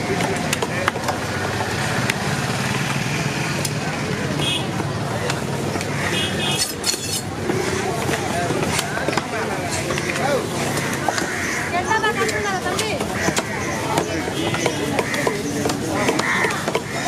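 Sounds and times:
steady engine hum: 0:00.0 - 0:17.0
cleaver striking wooden block: 0:12.2 - 0:17.0.

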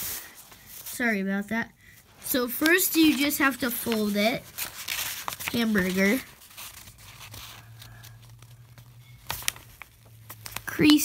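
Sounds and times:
paper rustling as folded: 0:02.2 - 0:11.0.

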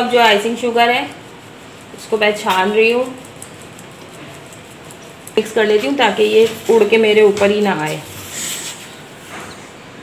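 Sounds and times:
sugar sifting through sieve: 0:00.0 - 0:09.3.

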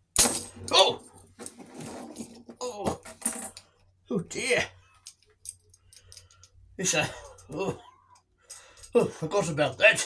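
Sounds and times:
man groaning and gasping: 0:07.3 - 0:08.0.

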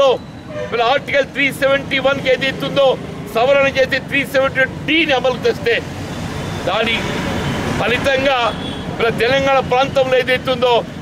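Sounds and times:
man speaking: 0:00.0 - 0:05.9, 0:06.6 - 0:10.9
street traffic rumble: 0:00.0 - 0:11.0.

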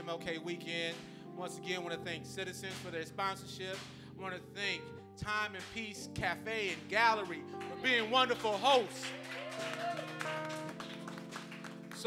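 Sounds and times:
light hand claps: 0:02.7 - 0:03.0, 0:03.8 - 0:04.0.

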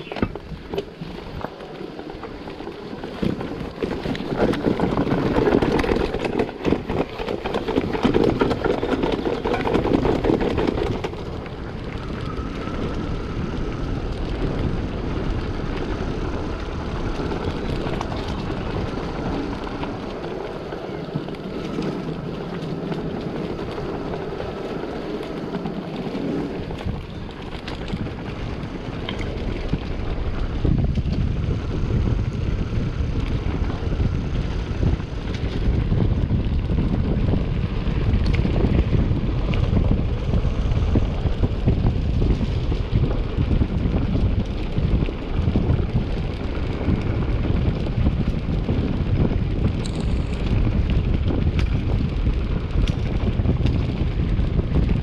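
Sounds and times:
mountain bike rattling over stones: 0:00.0 - 0:55.0
wind on microphone: 0:00.0 - 0:55.0.

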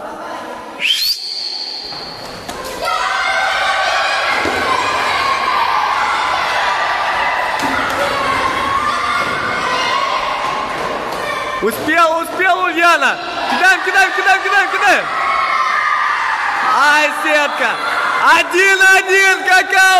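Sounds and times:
shrill whistle blast: 0:00.8 - 0:02.2
children shouting and cheering: 0:02.5 - 0:11.8, 0:13.2 - 0:18.5.

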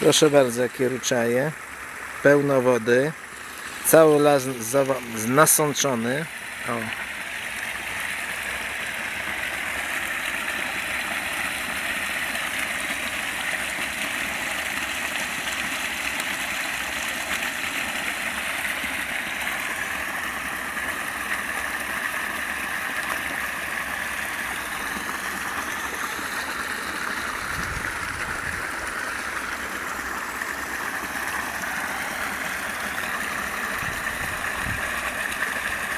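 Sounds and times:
brook babbling over stones: 0:00.0 - 0:35.9.

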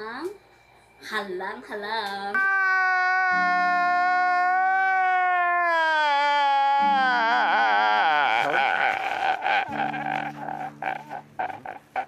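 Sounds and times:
man sobbing: 0:02.6 - 0:12.0.

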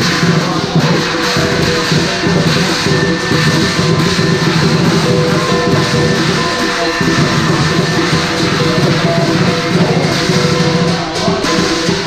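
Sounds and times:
big drum beating: 0:00.0 - 0:12.0
cymbals and gong ringing: 0:00.0 - 0:12.0.

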